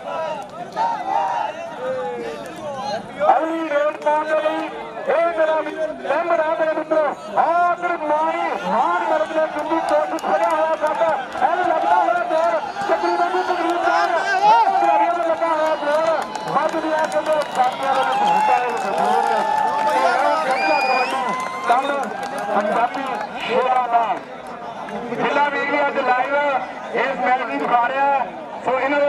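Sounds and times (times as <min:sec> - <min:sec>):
men shouting over one another: 0:08.2 - 0:16.2.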